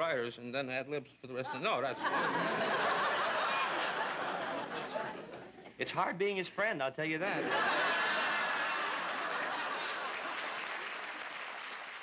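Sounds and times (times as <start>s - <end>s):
audience laughing: 1.5s - 5.7s, 7.3s - 11.2s.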